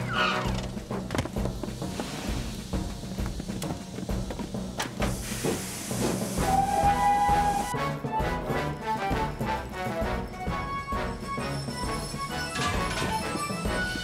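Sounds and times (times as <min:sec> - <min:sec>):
steam hissing: 0:00.0 - 0:07.7
background music: 0:00.0 - 0:14.0
steam whistle: 0:06.3 - 0:08.2.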